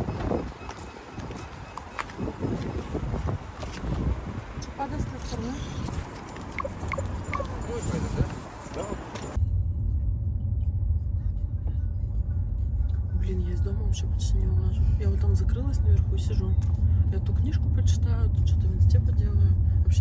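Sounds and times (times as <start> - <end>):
car cabin road rumble: 0.0 - 20.0
street noise: 0.0 - 20.0
faint voices: 4.6 - 9.4.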